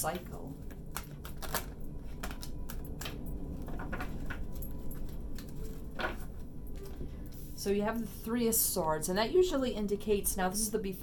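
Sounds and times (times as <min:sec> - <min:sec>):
cards being shuffled: 0:00.1 - 0:07.5.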